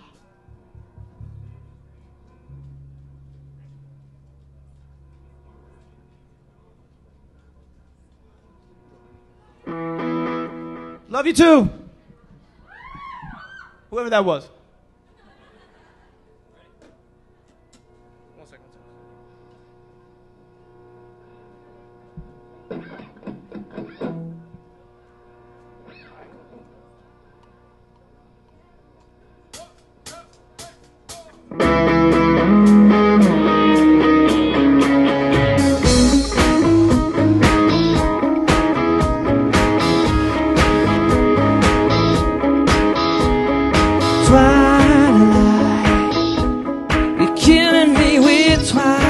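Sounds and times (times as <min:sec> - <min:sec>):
rock band playing: 0:31.5 - 0:49.0.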